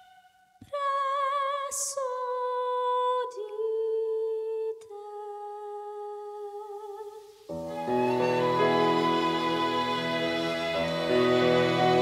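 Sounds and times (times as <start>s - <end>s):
string orchestra chord: 7.7s - 12.0s.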